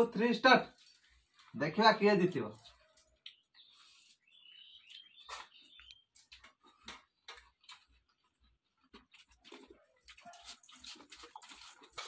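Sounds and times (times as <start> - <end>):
people eating from steel bowls: 0.1 - 12.0.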